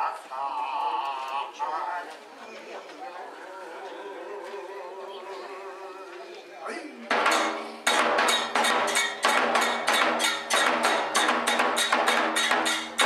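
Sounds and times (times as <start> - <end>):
taiko drum strikes: 7.1 - 13.0.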